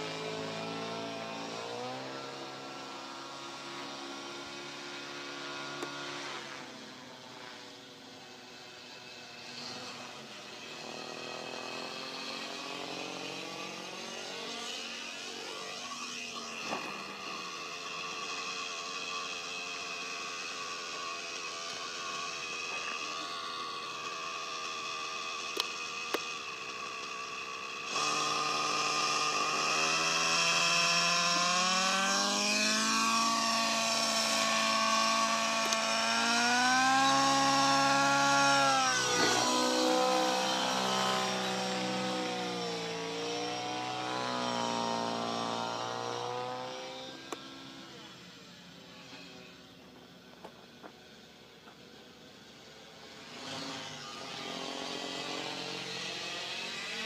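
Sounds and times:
model helicopter engine and rotor: 0.0 - 57.0.

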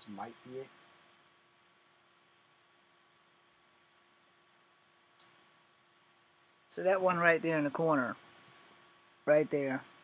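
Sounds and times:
faint constant hum: 0.0 - 10.0
faint steady hiss: 0.0 - 10.0.

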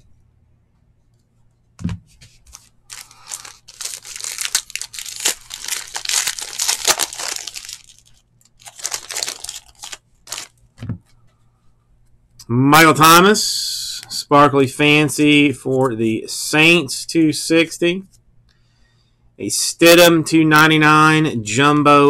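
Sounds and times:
foil wrapper tearing and crinkling: 2.5 - 10.6.

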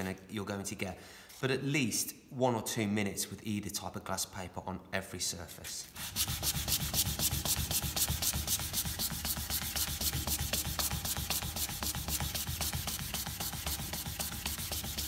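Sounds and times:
hand sanding wood: 5.8 - 15.0.

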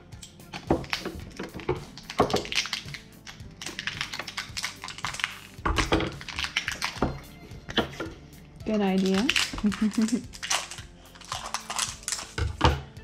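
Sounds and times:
faint music: 0.0 - 13.0.

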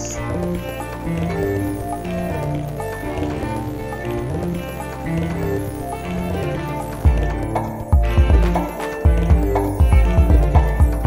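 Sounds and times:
instrumental backing beat: 0.0 - 11.0.

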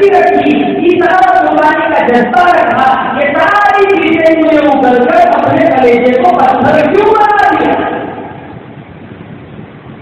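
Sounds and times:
room noise hiss and rumble: 0.0 - 10.0.

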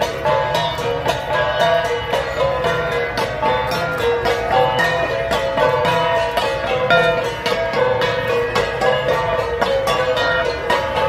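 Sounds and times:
bronze gongs beaten with sticks: 0.0 - 11.0.

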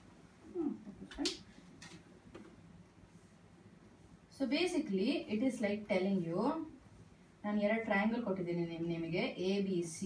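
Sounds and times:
woman humming hmm: 0.4 - 1.3.

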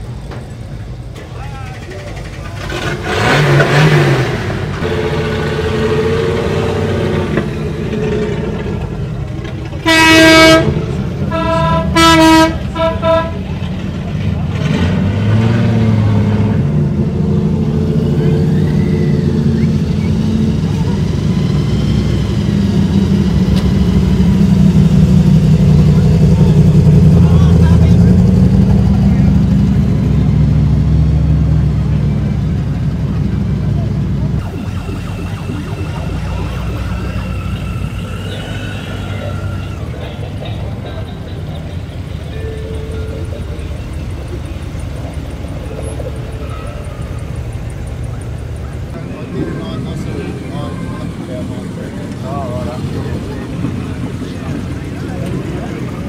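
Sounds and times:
car engines rumbling: 0.0 - 56.0
vehicle horn blasts: 9.8 - 13.5.

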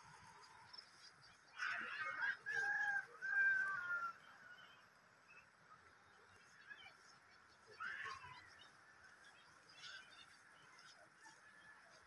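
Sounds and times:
bird calling: 7.6 - 11.4.

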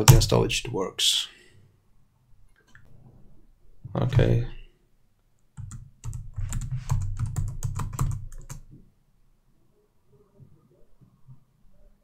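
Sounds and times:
typing on computer keyboard: 5.6 - 8.7.

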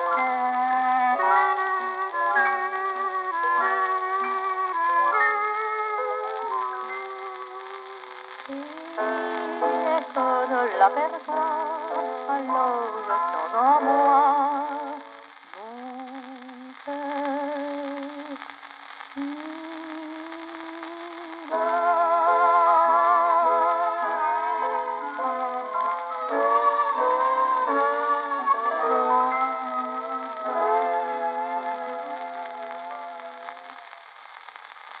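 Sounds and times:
singer holding long notes: 0.0 - 18.5, 19.2 - 34.0
record surface noise: 0.0 - 35.0.

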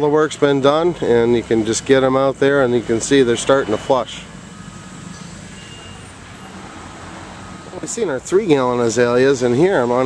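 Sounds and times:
vehicle engine hum: 0.0 - 10.0
faint thin high tones: 5.1 - 6.5.

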